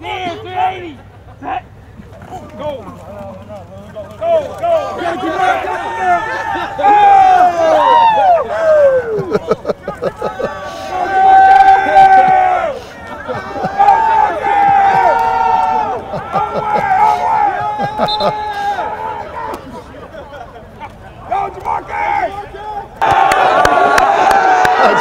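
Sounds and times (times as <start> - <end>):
group shouting and cheering: 4.2 - 20.0, 21.3 - 25.0
long drawn-out yells: 4.6 - 9.4, 10.2 - 19.8, 21.3 - 25.0.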